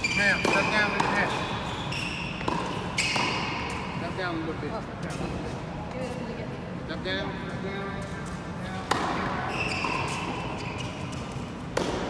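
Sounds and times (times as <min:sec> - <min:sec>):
racket hitting tennis ball: 0:00.0 - 0:04.0, 0:08.8 - 0:12.0.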